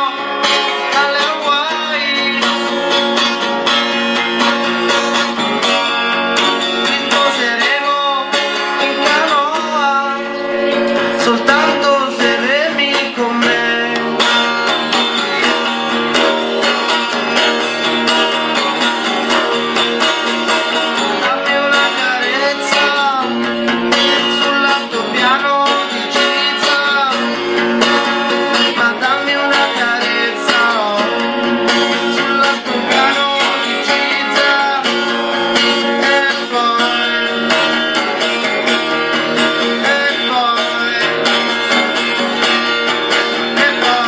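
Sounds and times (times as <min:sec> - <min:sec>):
man singing: 0:00.0 - 0:44.0
strummed guitar: 0:00.0 - 0:44.0.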